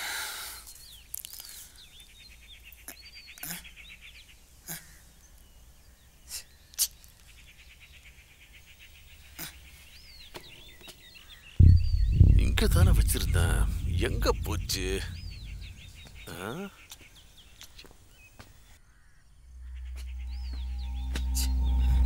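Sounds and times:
rhythmic chirring: 0:11.6 - 0:16.3, 0:19.7 - 0:22.0.

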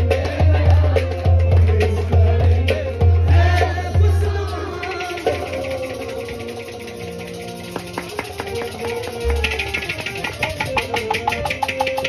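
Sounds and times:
fast sharp strokes: 0:04.8 - 0:12.0.

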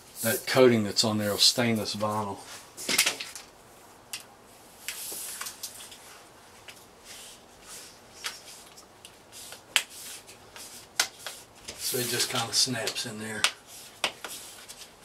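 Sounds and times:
soft rubbing: 0:05.0 - 0:15.0.

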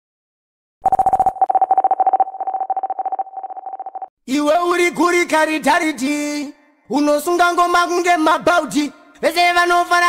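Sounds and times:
pulsing electronic beep: 0:00.8 - 0:04.1.

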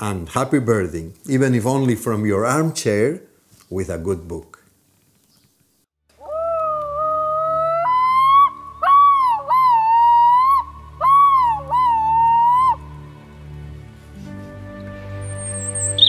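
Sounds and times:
loon wailing and yodelling: 0:06.2 - 0:13.0.

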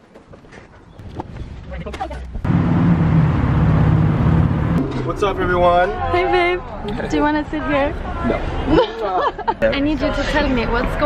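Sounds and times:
van engine running: 0:02.4 - 0:04.8.

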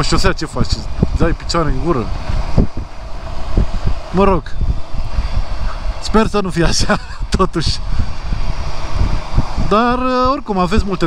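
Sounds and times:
motorcycle engine: 0:00.0 - 0:11.0
road noise: 0:00.0 - 0:11.0
wind buffeting microphone: 0:00.0 - 0:11.0.

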